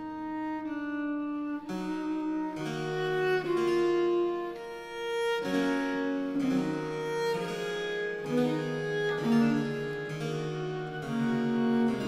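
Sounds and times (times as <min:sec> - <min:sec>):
basso continuo accompaniment: 0:00.0 - 0:12.0
solo cello: 0:00.0 - 0:12.0.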